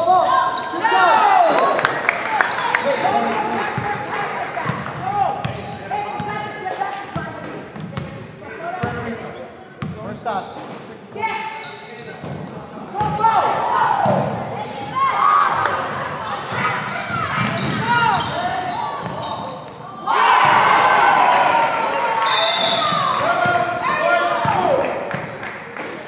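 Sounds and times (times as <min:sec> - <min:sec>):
voices of players and spectators: 0:00.0 - 0:26.0.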